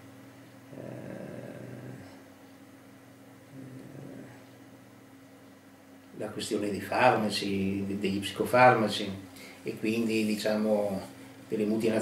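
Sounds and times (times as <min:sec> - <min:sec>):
man's wordless murmur: 0:00.7 - 0:02.2, 0:03.5 - 0:04.5.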